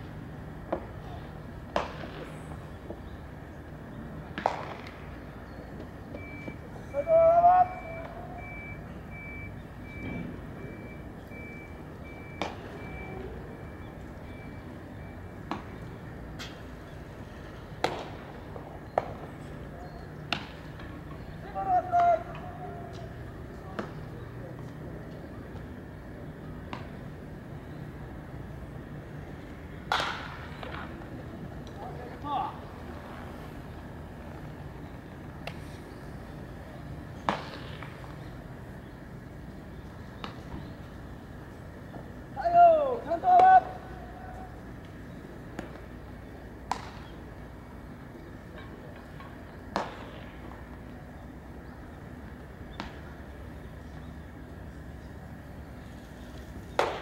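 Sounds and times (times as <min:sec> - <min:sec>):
baseball bat cracking ball: 0:01.7 - 0:02.4, 0:04.3 - 0:05.0, 0:17.8 - 0:18.2, 0:29.8 - 0:30.9, 0:37.2 - 0:38.0, 0:46.6 - 0:47.2, 0:49.7 - 0:50.5, 0:56.7 - 0:57.0
players shouting: 0:06.8 - 0:08.6, 0:21.3 - 0:23.3, 0:42.3 - 0:44.7.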